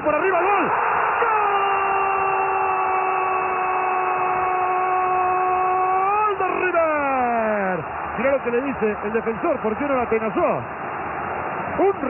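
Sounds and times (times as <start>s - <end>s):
commentator shouting goal cry: 0.0s - 10.3s.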